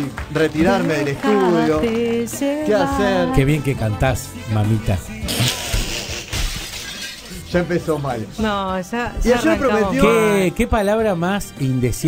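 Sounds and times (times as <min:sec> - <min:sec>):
music: 0:00.0 - 0:12.0
glass shattering: 0:06.3 - 0:07.5.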